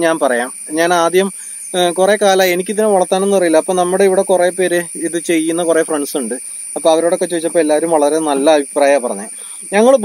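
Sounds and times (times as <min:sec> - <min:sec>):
man talking: 0:00.0 - 0:10.0
thin high-pitched whine: 0:00.0 - 0:10.0.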